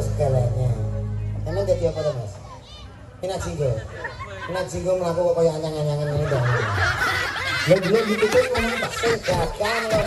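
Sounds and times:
audience laughing: 0:03.8 - 0:04.9, 0:05.8 - 0:10.0.

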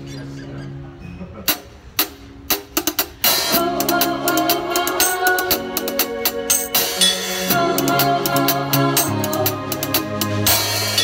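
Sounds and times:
band playing: 0:00.7 - 0:11.0
cymbals: 0:01.6 - 0:11.0
drum hits: 0:10.2 - 0:11.0.

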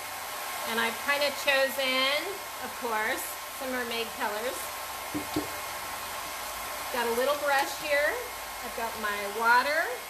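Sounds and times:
hot-air blower running: 0:00.0 - 0:10.0
brief tap: 0:05.2 - 0:05.6.

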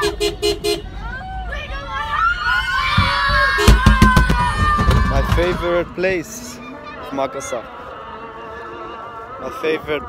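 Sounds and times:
car horn beeps: 0:00.0 - 0:01.0
crowd shouting and cheering: 0:01.0 - 0:09.2.

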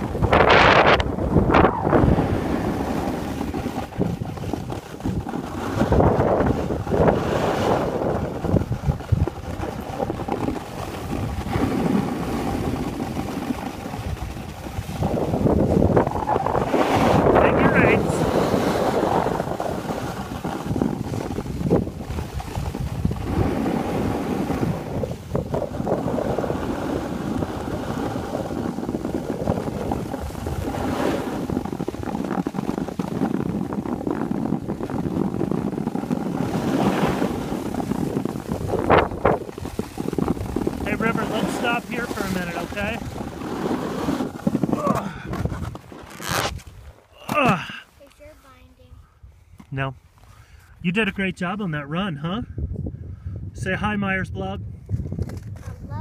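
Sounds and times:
wind buffeting microphone: 0:00.0 - 0:47.0, 0:52.2 - 0:56.0
skis sliding over snow: 0:00.0 - 0:48.7.

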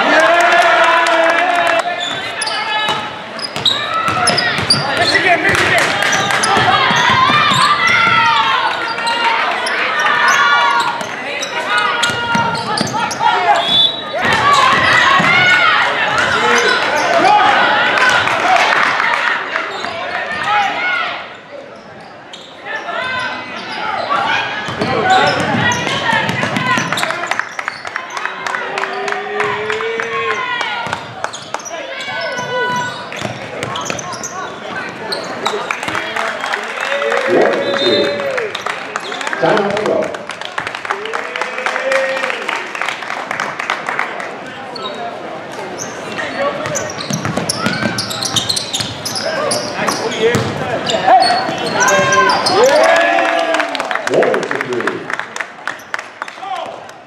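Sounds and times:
indistinct shouts and voices: 0:36.1 - 0:38.5
basketball bouncing on hardwood: 0:46.7 - 0:48.0.

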